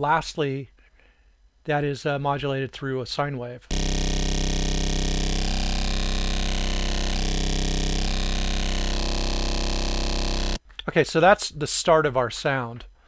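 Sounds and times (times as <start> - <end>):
synthesizer held note: 3.7 - 10.6.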